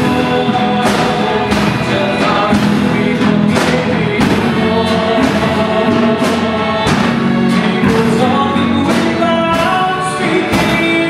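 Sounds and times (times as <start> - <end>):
bowed violins: 0.0 - 11.0
guitar: 0.0 - 11.0
percussion hits: 0.0 - 11.0
voices singing: 0.0 - 11.0.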